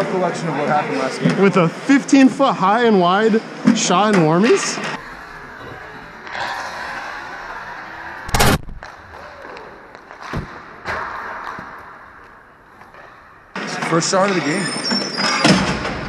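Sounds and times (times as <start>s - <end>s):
loud bang: 8.3s - 8.8s.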